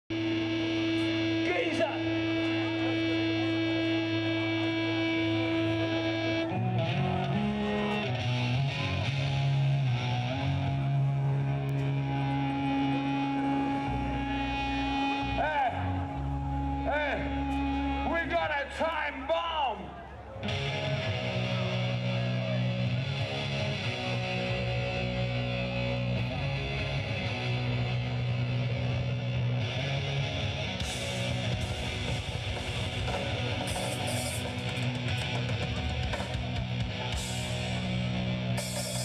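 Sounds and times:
distorted electric guitar and bass: 0.0s - 39.0s
amplifier hum: 0.1s - 18.1s.

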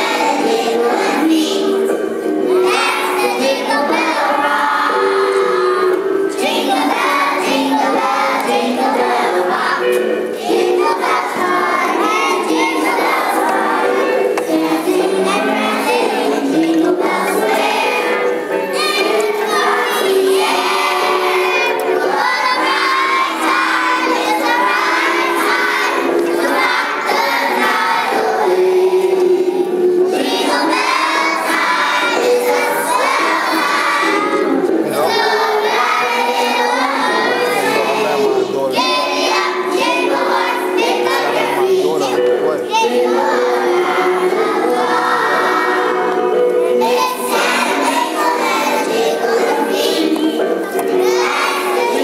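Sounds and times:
children's choir singing: 0.0s - 52.0s.

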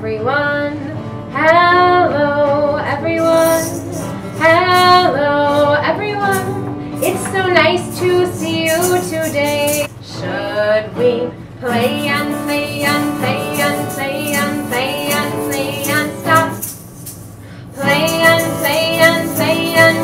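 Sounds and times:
woman singing: 0.0s - 16.7s, 17.7s - 20.0s
acoustic guitar strumming: 0.0s - 20.0s.

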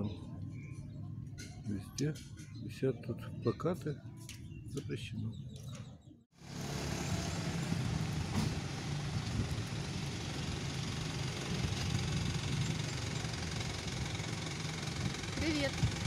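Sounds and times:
street traffic noise: 0.0s - 16.0s
vehicle engine humming: 6.4s - 16.0s.

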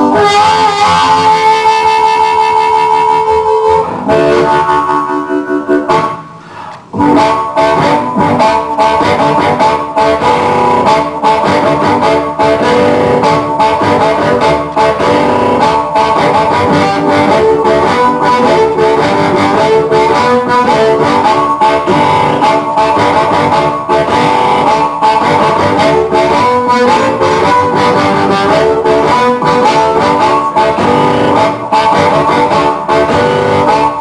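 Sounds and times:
amplified blues harmonica: 0.0s - 34.0s.

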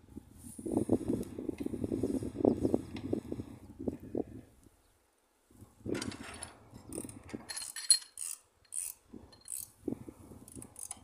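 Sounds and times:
hand tools clicking and scraping on metal: 5.9s - 9.7s, 10.4s - 11.0s.

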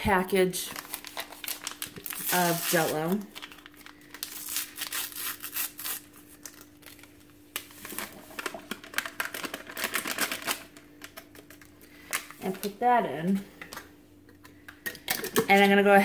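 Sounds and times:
paper packet crinkling: 0.6s - 12.4s.

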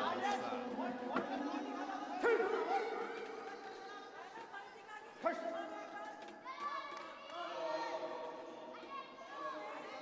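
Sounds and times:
crowd chatter and shouting: 0.0s - 10.0s
loud shout: 6.4s - 10.0s.

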